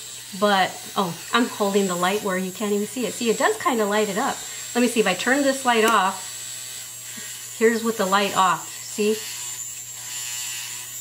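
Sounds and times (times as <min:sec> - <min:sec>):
electric trimmer buzzing: 0:00.0 - 0:11.0.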